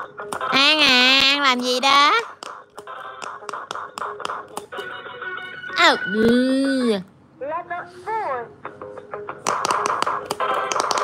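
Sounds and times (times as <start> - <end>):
quick taps on toy buttons: 9.4 - 11.0.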